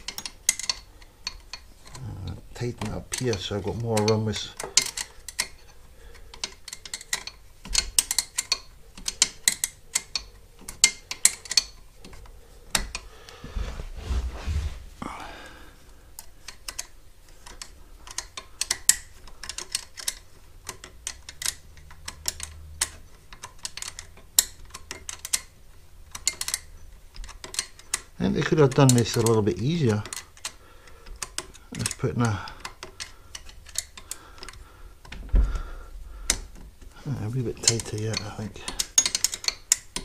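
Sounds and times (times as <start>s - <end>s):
clicks of small parts handled: 0.0s - 13.1s, 16.1s - 35.4s, 36.3s - 40.0s
short rubbing sound: 13.5s - 15.0s.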